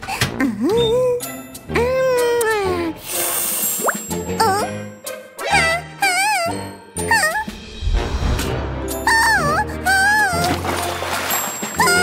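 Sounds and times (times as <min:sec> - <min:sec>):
cartoon background music: 0:00.0 - 0:12.0
water gush sound effect: 0:10.3 - 0:12.0.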